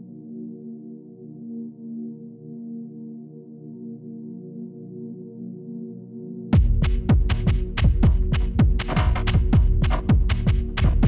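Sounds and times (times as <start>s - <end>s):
deep kick drums: 6.6s - 11.0s.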